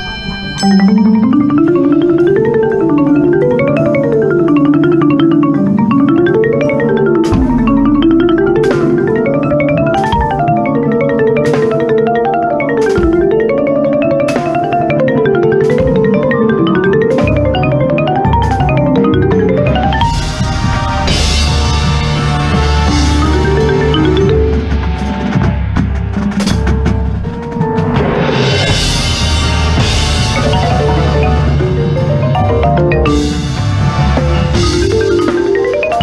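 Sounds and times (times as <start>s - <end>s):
marimba fast runs: 0.0s - 36.0s.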